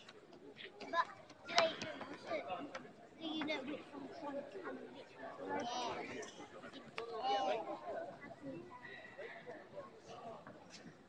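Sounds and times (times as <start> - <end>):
overlapping voices and chatter: 0.0 - 11.0.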